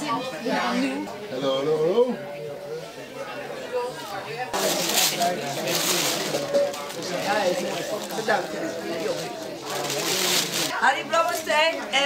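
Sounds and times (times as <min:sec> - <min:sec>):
paper wrapping crinkling: 0:04.6 - 0:10.8.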